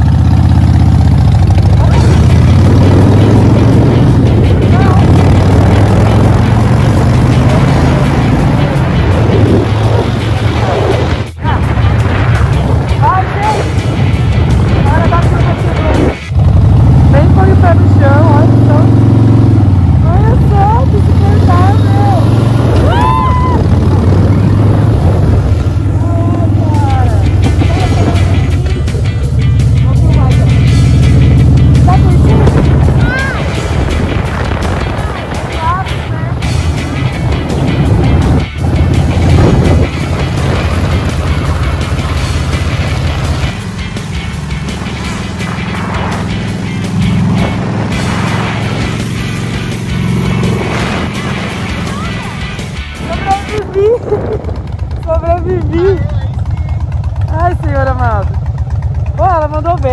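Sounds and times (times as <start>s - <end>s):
motorcycle engine running: 0.0s - 59.9s
background music: 1.8s - 16.4s, 17.0s - 56.4s.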